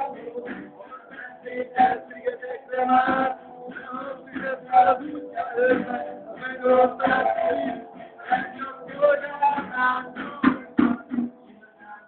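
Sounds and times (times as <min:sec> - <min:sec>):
boy singing into a microphone: 0:00.0 - 0:11.2
live band with guitar and drums: 0:00.0 - 0:12.0.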